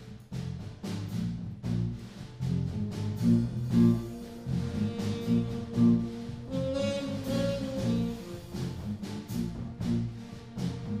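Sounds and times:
steady drum beat: 0.0 - 11.0
live band playing: 0.8 - 11.0.

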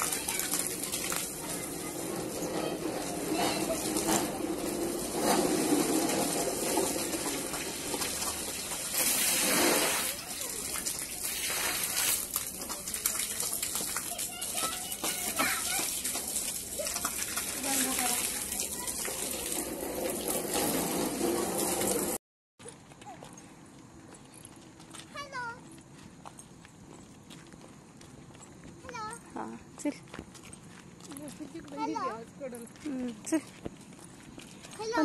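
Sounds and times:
hose spraying water on concrete: 0.0 - 22.2.

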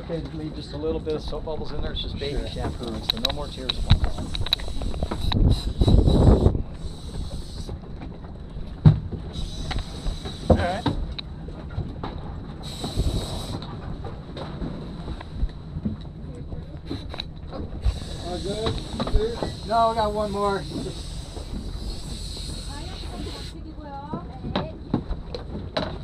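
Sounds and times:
short hissing bursts: 3.8 - 7.7, 9.3 - 11.1, 12.6 - 13.6, 17.8 - 23.6
steady high whine: 9.3 - 11.3, 17.0 - 23.7.

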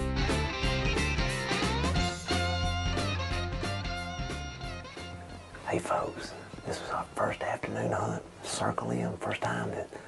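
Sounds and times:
man whispering: 5.6 - 10.0.

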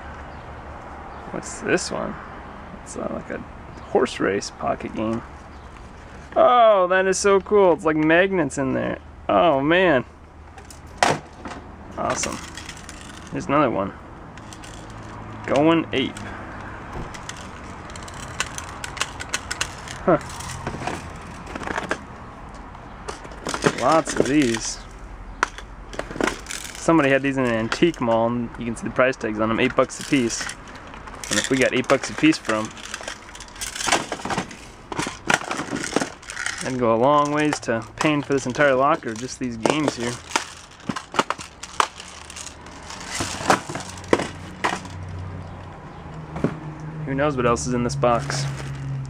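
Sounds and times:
plastic games clicking and knocking: 10.6 - 13.4, 14.4 - 16.3, 17.1 - 22.0, 23.1 - 28.1, 29.6 - 45.2
packaging rustling: 17.1 - 22.0, 23.1 - 24.7, 29.9 - 45.0
plastic handheld games clicking: 17.2 - 20.6.

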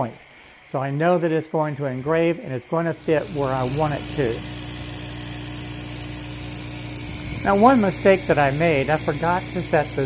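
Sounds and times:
laser engraver hum and whine: 0.0 - 10.0.

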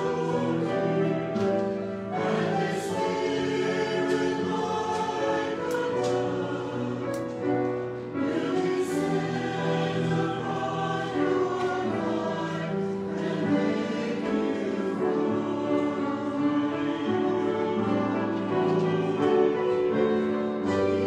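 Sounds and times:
mixed choir singing: 0.0 - 21.0.

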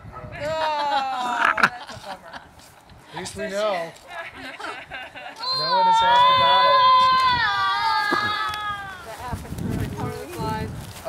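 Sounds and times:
faint voices: 3.2 - 11.0
child squealing: 5.4 - 9.1.

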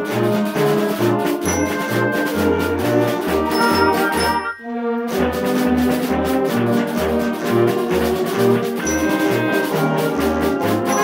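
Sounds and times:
concert band playing: 0.0 - 11.0.

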